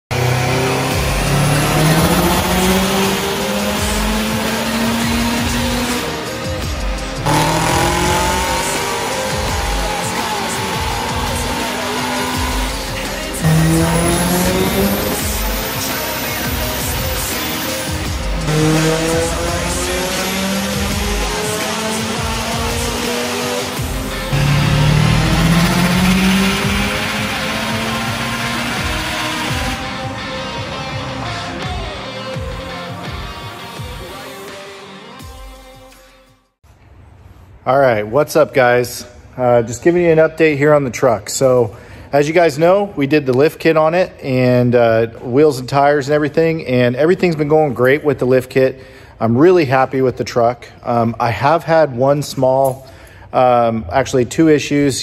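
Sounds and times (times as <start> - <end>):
turbocharged engine revving: 0.1 - 30.4.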